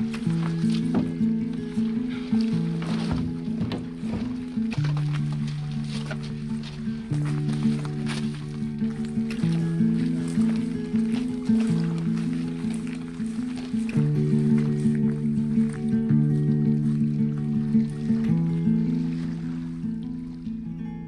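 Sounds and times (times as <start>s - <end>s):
instrumental background music: 0.0s - 21.0s.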